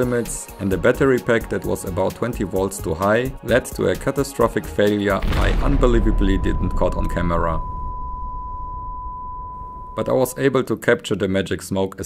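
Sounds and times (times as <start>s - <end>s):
faint low rumble: 5.2s - 10.6s
steady test tone: 5.8s - 10.7s.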